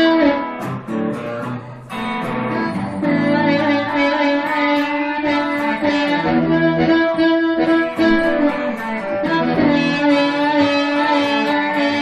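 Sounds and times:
amplified blues harmonica: 0.0s - 12.0s.

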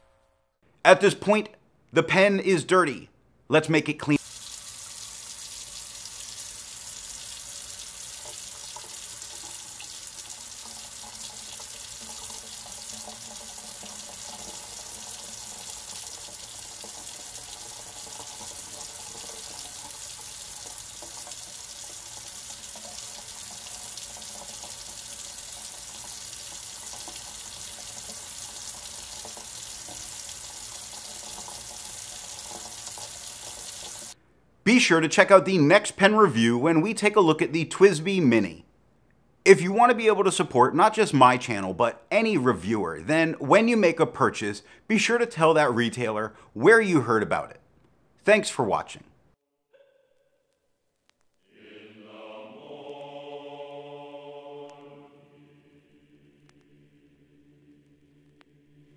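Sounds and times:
faucet running into steel sink: 4.2s - 34.2s.

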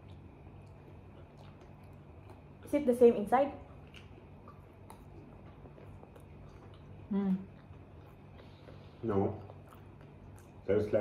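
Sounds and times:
faint chewing: 0.0s - 11.0s.

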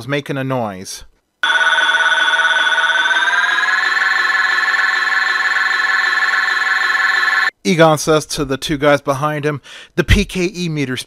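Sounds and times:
pulsing electronic warbling tone: 1.4s - 7.5s.

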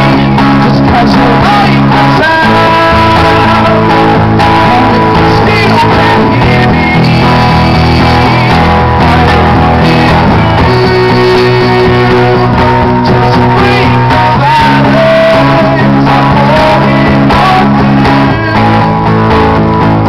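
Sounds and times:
man singing: 0.0s - 19.8s
strummed acoustic guitar: 0.0s - 20.0s.

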